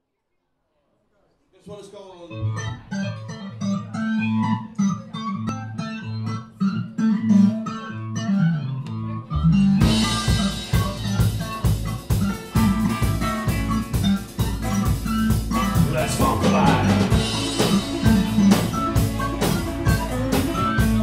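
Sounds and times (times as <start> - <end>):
electric guitar riff: 2.3 - 21.0
upright bass riff: 2.4 - 21.0
drum kit with cymbals: 9.8 - 21.0.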